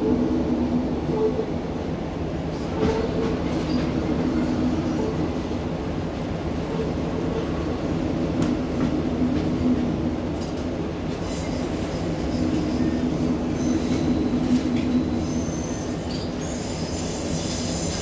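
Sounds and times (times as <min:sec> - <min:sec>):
train wheels rumbling on rail: 0:00.0 - 0:18.0
high wheel squeal: 0:11.3 - 0:18.0.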